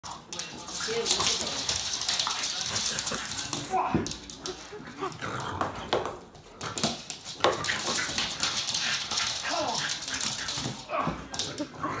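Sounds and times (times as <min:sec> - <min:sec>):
claws scrabbling on wooden floor: 0:00.1 - 0:11.7.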